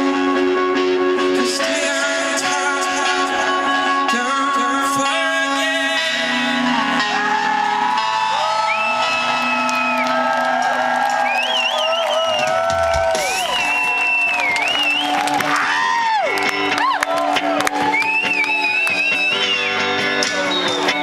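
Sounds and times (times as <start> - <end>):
live rock band playing: 0.0 - 21.0
crowd cheering and whooping: 6.2 - 21.0.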